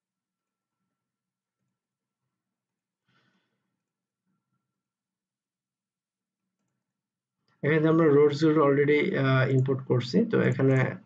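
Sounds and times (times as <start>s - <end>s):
faint exhaled breath: 3.0s - 3.8s.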